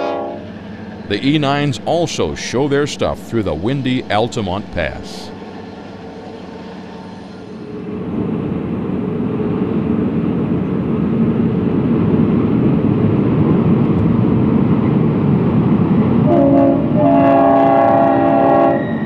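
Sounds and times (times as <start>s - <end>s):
locomotive air horn: 0.0s - 0.6s, 16.2s - 19.0s
diesel train rumbling: 0.0s - 19.0s.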